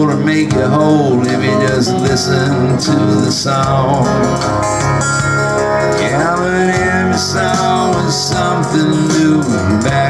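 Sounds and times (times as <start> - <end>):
electric guitar: 0.0 - 10.0
strummed acoustic guitar: 0.0 - 10.0.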